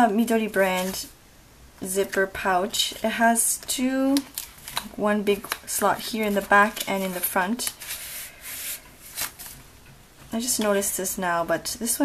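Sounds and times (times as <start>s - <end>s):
plastic sheets rustling: 0.6s - 1.1s, 4.0s - 10.9s.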